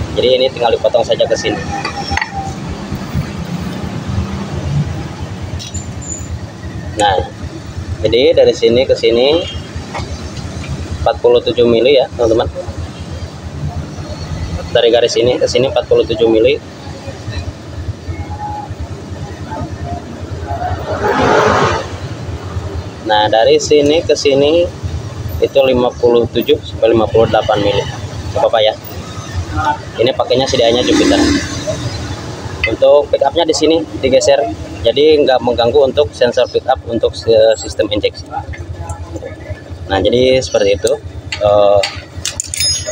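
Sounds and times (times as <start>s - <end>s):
motor vehicle rumbling: 0.0s - 42.9s
metallic clink: 41.3s - 42.9s.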